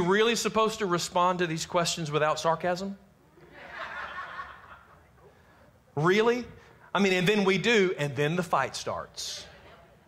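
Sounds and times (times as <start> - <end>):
audience laughing softly: 3.3 - 5.5.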